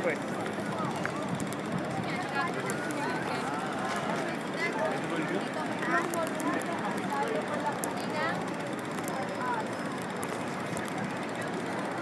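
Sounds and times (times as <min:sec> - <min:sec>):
indistinct voices of passers-by: 0:00.0 - 0:12.0
traffic: 0:00.0 - 0:12.0.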